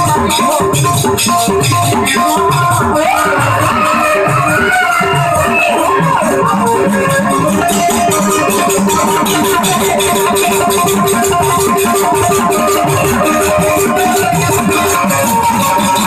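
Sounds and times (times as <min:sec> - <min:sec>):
drum beats: 0:00.0 - 0:16.0
fast rattling percussion: 0:00.0 - 0:16.0
live band folk music: 0:00.0 - 0:16.0.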